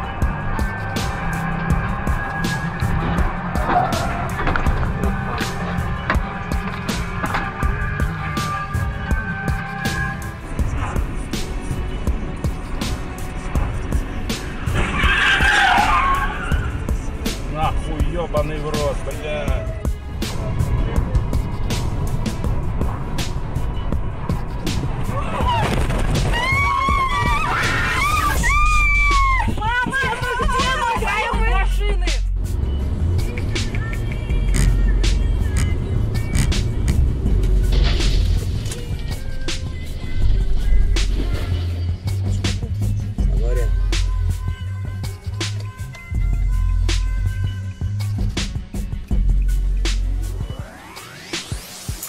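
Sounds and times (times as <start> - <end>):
car tyres squealing: 0.0 - 7.5, 14.3 - 17.1, 23.8 - 31.3, 33.3 - 38.9
background music with steady beat: 0.0 - 25.1, 26.5 - 52.0
car engine and road noise: 0.0 - 52.0.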